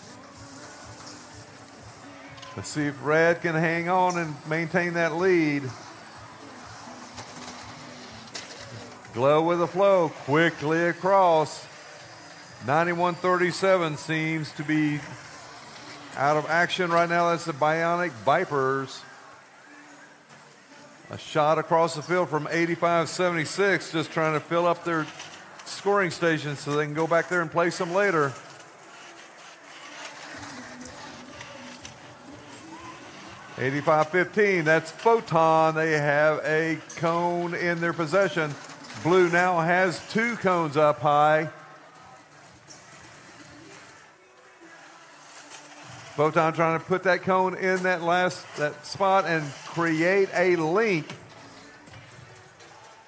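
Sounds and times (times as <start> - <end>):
crowd and robot hall noise: 0.0 - 53.0.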